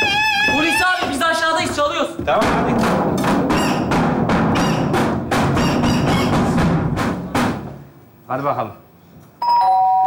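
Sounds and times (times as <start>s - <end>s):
drum beating steady rhythm: 0.0s - 8.0s.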